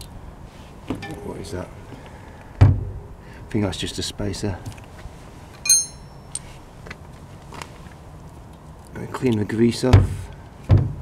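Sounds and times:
sharp metallic clink: 5.6 - 6.4.

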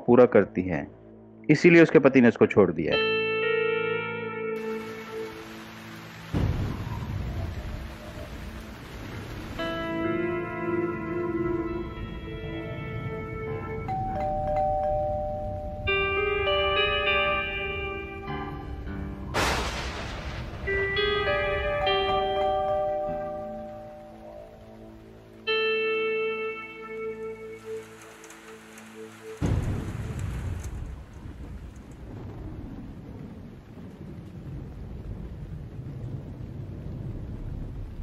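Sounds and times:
background music: 0.0 - 30.9
rain falling: 4.6 - 38.0
thunder crack and rumble: 6.3 - 10.0, 18.4 - 23.9, 27.6 - 38.0
doorbell ding-dong chime: 13.8 - 17.9, 21.5 - 24.3.

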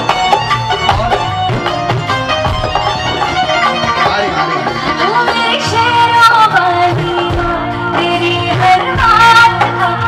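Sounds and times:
live band playing devotional music: 0.0 - 10.0.

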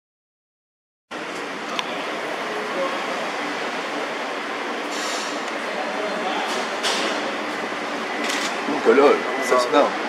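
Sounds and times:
parking garage hiss and hum: 1.1 - 10.0.

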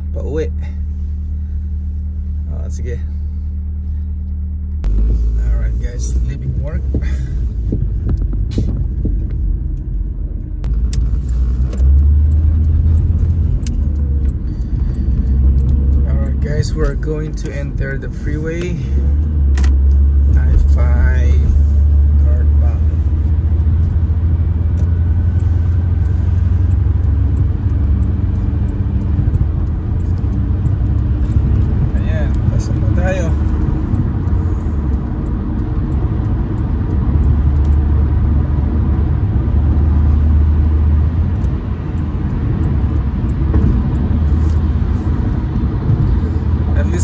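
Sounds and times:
car road rumble inside cabin: 0.0 - 47.0.

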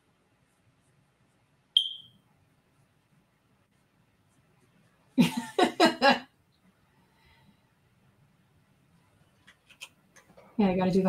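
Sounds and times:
smoke detector chirp: 1.8 - 2.2.

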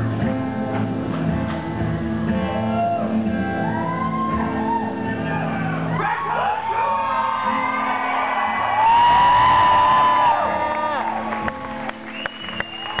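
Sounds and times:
rock guitar chords: 0.0 - 4.7
crowd shouting and whooping: 2.5 - 13.0.

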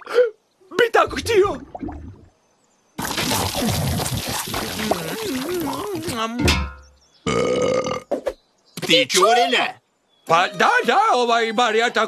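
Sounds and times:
short gulping sounds: 3.0 - 6.2
cartoon seagull burping: 3.1 - 6.3.

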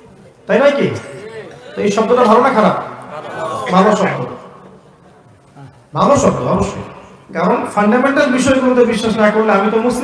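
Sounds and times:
man preaching into a microphone: 0.5 - 4.6, 5.9 - 10.0.

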